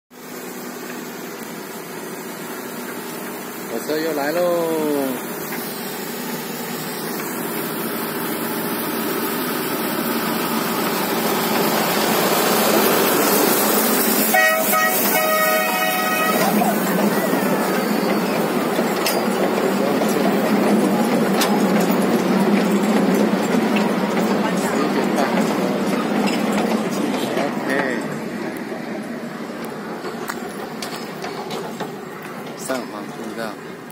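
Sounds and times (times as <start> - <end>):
train wheels rattling on track: 0.2 - 33.9
train horn: 14.3 - 16.8.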